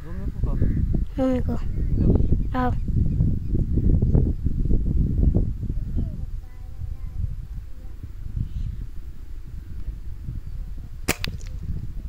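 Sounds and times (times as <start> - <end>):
air rifle shot: 11.0 - 11.7.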